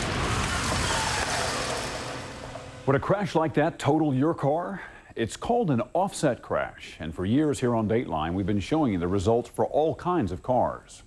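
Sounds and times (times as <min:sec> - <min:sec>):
car crash crunching: 0:00.0 - 0:02.8.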